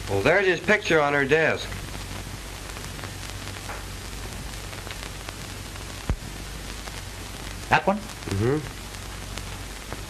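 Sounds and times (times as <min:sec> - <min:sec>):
film soundtrack hiss and crackle: 0:00.0 - 0:10.0.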